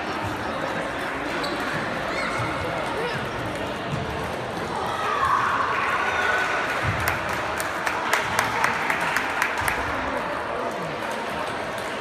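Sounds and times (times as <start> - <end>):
background chatter of people: 0.0 - 12.0.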